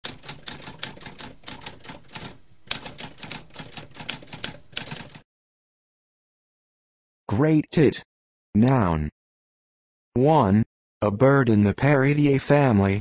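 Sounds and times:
typewriter keys striking: 0.0s - 5.2s.

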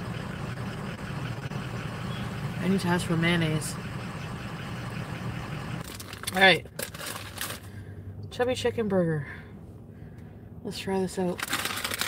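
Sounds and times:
car engine idling: 0.0s - 8.3s.

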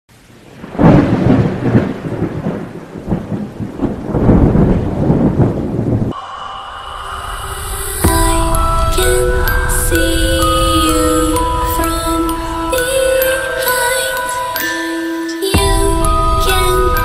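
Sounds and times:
rain-like hiss: 0.1s - 14.4s
thunder crack and rumbles: 0.4s - 6.2s
music with held tones: 7.8s - 17.0s.

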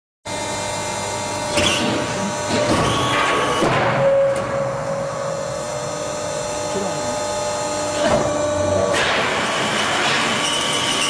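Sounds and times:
machine hum with fixed tones: 0.3s - 11.0s
noisy machine working sounds: 0.3s - 11.0s.

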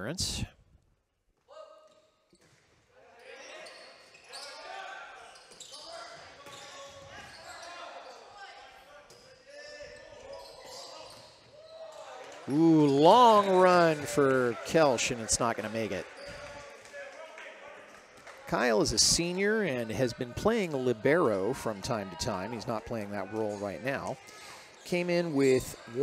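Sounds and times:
indistinct voices in a hall: 2.8s - 26.0s.

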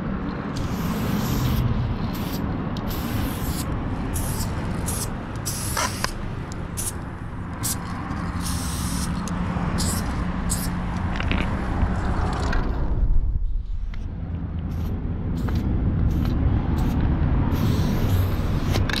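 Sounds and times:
low rumble: 0.0s - 5.4s, 9.4s - 18.3s
spray paint can hissing: 0.5s - 11.0s, 14.6s - 19.0s.

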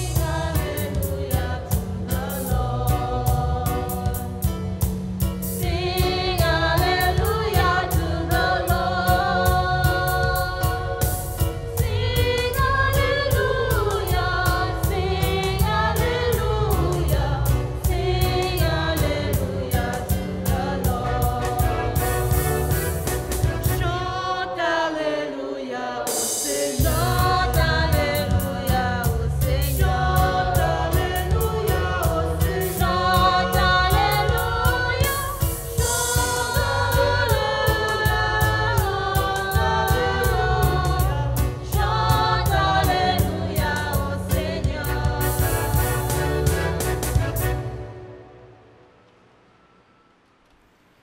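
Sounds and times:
steady percussion beat: 0.0s - 23.9s, 26.1s - 47.6s
bass: 0.0s - 24.3s, 26.8s - 48.1s
choir singing a hymn: 0.0s - 48.2s.

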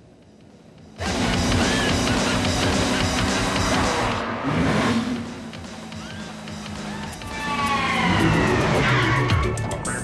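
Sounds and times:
background music: 0.0s - 10.0s
dune buggy engine whine: 0.9s - 9.6s.

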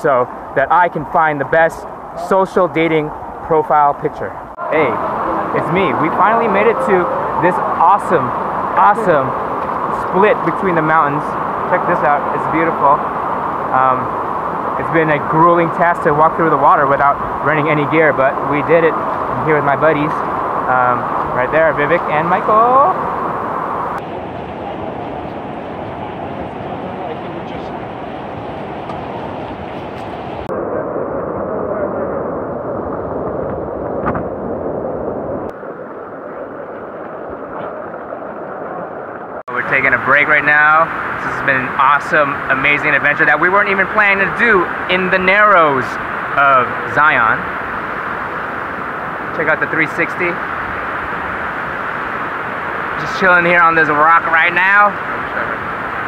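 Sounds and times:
shallow river water rushing: 4.4s - 56.0s.

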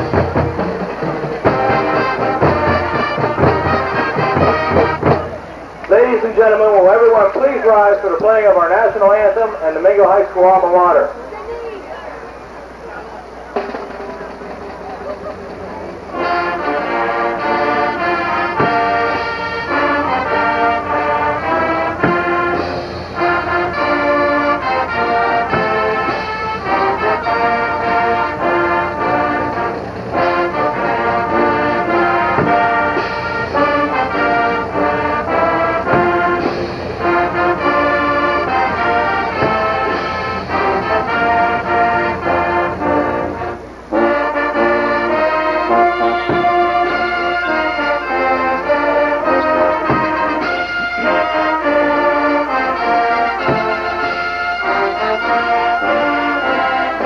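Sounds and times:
brass band playing: 0.0s - 57.0s.

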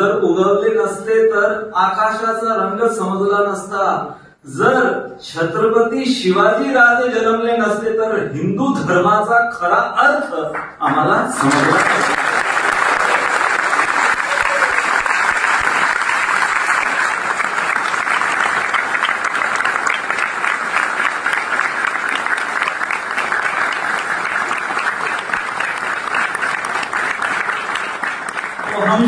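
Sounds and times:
audience applauding: 11.3s - 29.0s.

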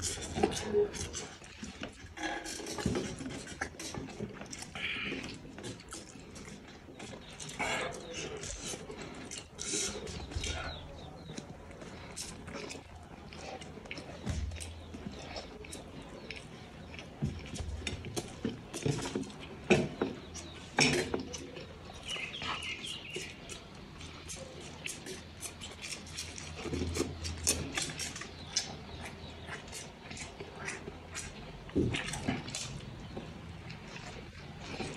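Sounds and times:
person chewing and mouth smacking: 0.0s - 34.9s.

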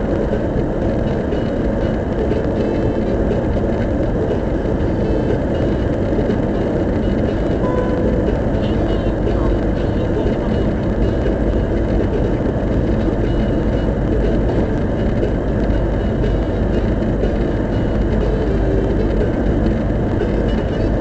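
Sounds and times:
car road and engine noise: 0.0s - 21.0s.

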